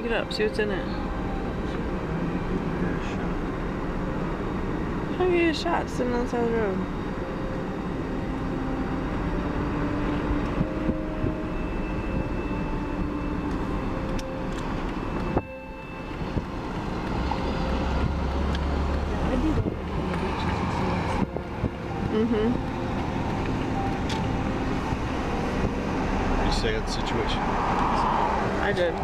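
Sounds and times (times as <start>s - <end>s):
vehicle engine and road noise: 0.0s - 29.0s.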